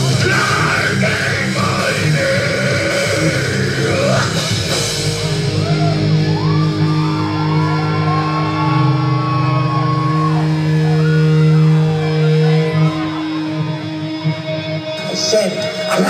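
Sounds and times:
bending lead guitar line: 0:00.0 - 0:16.0
distorted guitars and bass: 0:00.0 - 0:16.0.

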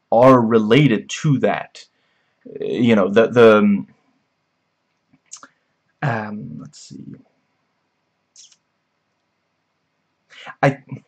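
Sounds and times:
faint breath noise: 0:01.9 - 0:02.8, 0:10.3 - 0:10.7.

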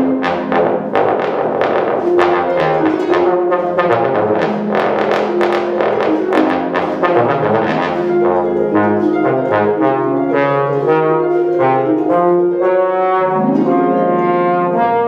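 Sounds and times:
bass trombone melody: 0:00.0 - 0:15.0
harp plucking quick notes: 0:00.0 - 0:15.0.

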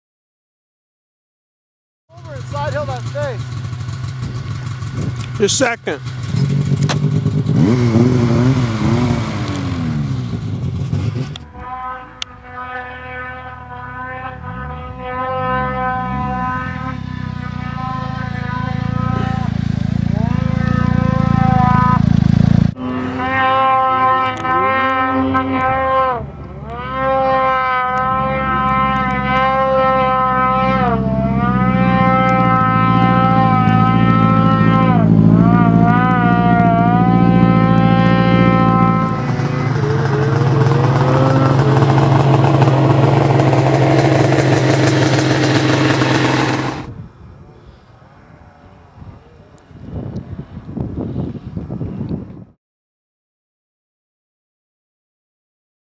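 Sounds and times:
snowmobile engine whining: 0:02.1 - 0:47.0
wind noise: 0:04.2 - 0:05.5, 0:45.6 - 0:52.6.

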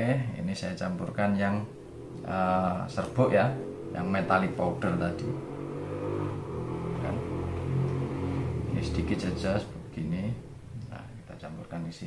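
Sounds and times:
low engine rumble: 0:00.0 - 0:12.0.

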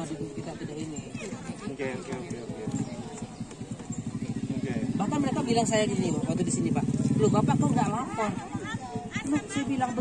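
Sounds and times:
crowd voices: 0:00.0 - 0:10.0
small engine idling: 0:00.0 - 0:10.0.

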